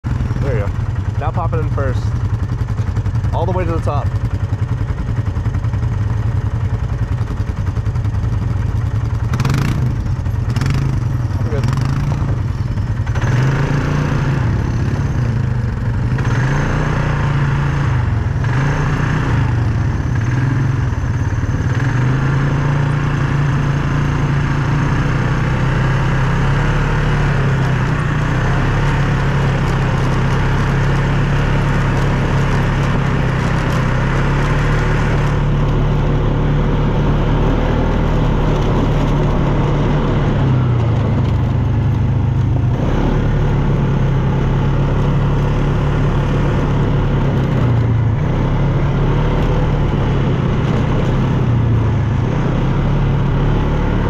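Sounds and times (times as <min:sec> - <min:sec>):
atv engine running: 0:00.0 - 0:54.0.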